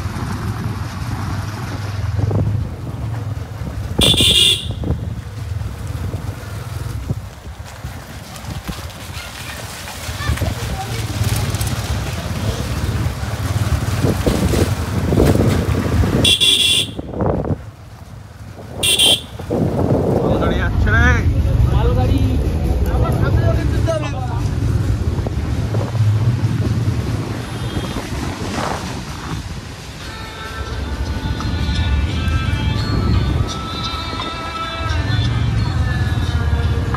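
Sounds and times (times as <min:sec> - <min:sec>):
motorcycle running: 0:00.0 - 0:36.9
vehicle horn honks: 0:04.0 - 0:05.0, 0:16.2 - 0:17.2, 0:18.8 - 0:19.4, 0:27.4 - 0:28.1.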